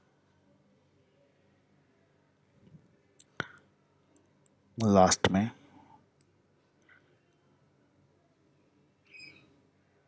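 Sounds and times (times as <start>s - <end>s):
person speaking: 4.8s - 5.5s.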